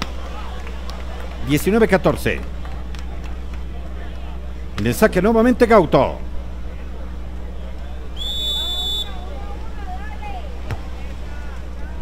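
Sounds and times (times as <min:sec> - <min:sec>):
crowd voices: 0:00.0 - 0:12.0
referee's whistle blast: 0:08.2 - 0:09.3.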